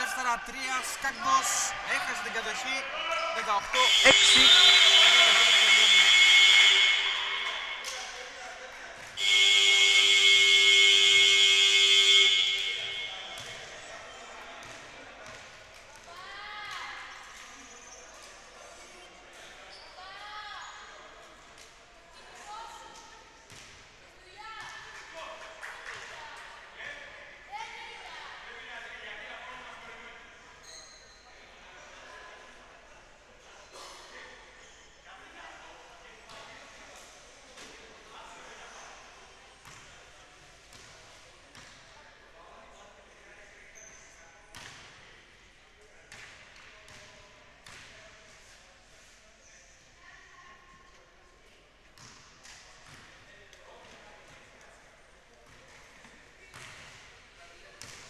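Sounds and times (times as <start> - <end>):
faint voices: 0.0 - 9.0
scoreboard buzzer blasts: 3.8 - 7.7, 9.2 - 13.1.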